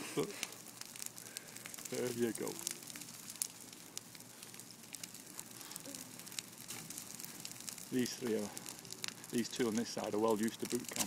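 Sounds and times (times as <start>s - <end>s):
bonfire crackling and popping: 0.0s - 11.0s.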